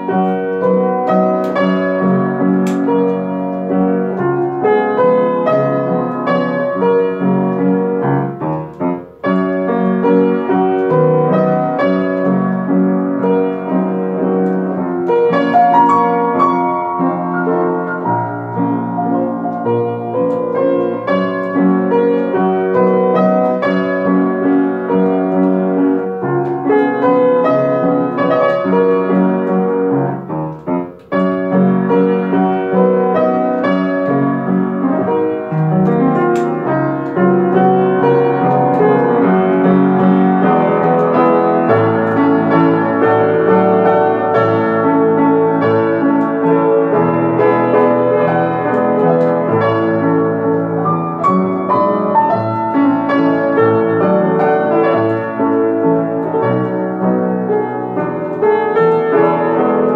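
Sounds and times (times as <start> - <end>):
piano playing a waltz: 0.0 - 59.9.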